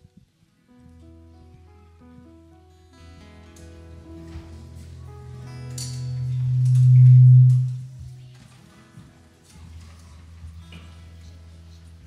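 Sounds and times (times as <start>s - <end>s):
faint guitar and keyboard notes: 0.0s - 12.0s
low steady tone from sound system: 5.0s - 8.3s.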